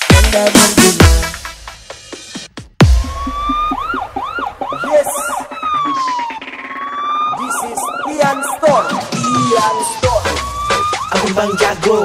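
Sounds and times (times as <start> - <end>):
siren wail and whoops: 2.9 - 12.0.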